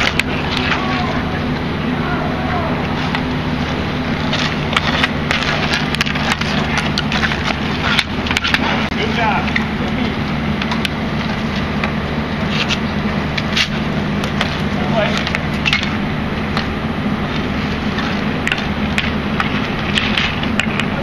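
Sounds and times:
steady low hum: 0:00.0 - 0:21.0
stick slapping ball: 0:04.3 - 0:09.6, 0:18.0 - 0:21.0
hockey sticks clacking on concrete: 0:04.3 - 0:09.7, 0:13.4 - 0:16.0, 0:18.0 - 0:20.9.

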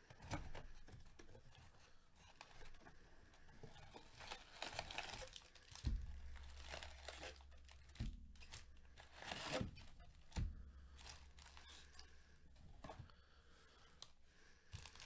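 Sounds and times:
cardboard and foil crinkling: 0:00.6 - 0:12.2, 0:14.8 - 0:15.0.

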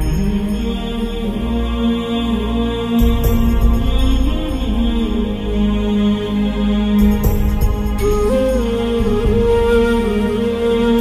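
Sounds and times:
slow droning devotional music: 0:00.0 - 0:11.0.

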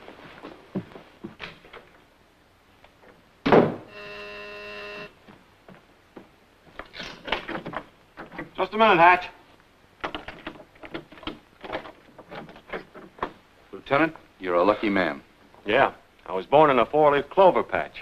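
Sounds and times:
electric door buzzer: 0:03.9 - 0:05.2.

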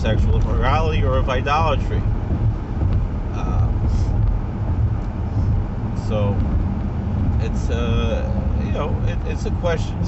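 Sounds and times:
car engine: 0:00.0 - 0:10.0
road noise inside car: 0:00.0 - 0:10.0.

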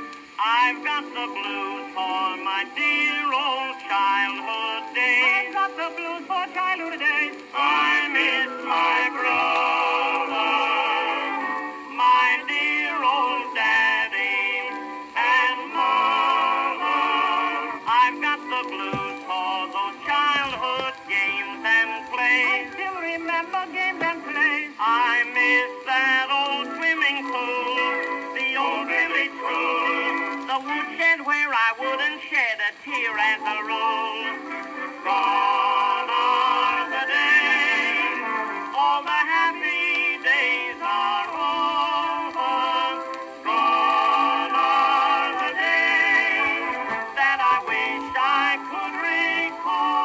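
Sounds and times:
male vocal quartet singing: 0:00.0 - 0:50.0.

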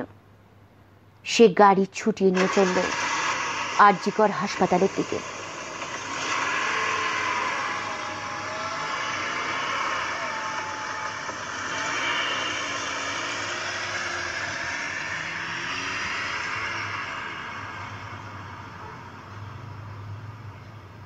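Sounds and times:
vehicle engine and road noise: 0:02.4 - 0:21.0
motorbike speeding off: 0:04.8 - 0:20.6.

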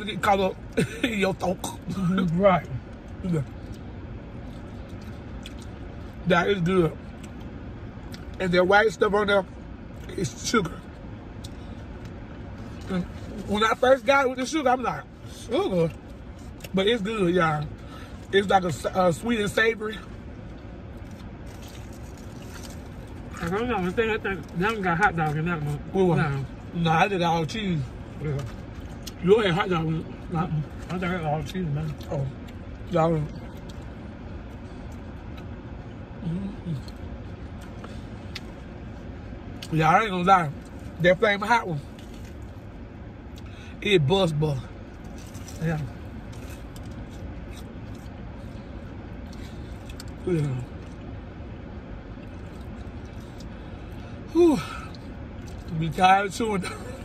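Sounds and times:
car cabin hum: 0:00.0 - 0:57.0
people chewing crisp food: 0:00.2 - 0:08.4, 0:10.8 - 0:14.1, 0:20.0 - 0:26.8, 0:27.4 - 0:39.8, 0:41.8 - 0:43.6, 0:44.8 - 0:56.0
biting and chewing food: 0:01.4 - 0:08.4, 0:20.0 - 0:25.9, 0:44.8 - 0:51.2.

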